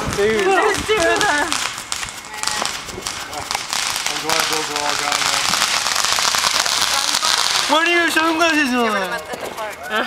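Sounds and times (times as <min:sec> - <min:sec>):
firework crackling: 0:00.0 - 0:10.0.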